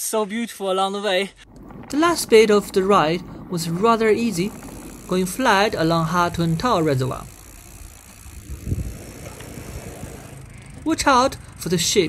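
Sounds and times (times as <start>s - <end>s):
wind rumble: 1.4s - 11.8s
bicycle tyres on paved road: 1.4s - 12.0s.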